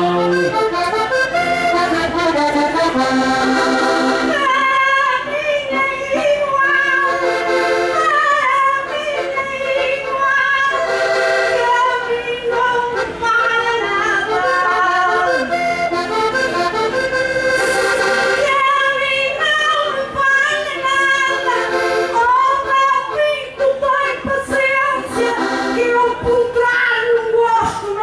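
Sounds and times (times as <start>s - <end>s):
button accordion folk melody: 0.0s - 28.0s.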